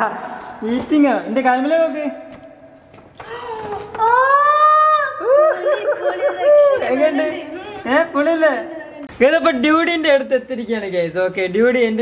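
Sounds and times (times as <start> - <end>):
person's high-pitched drawn-out cry: 4.0 - 6.8.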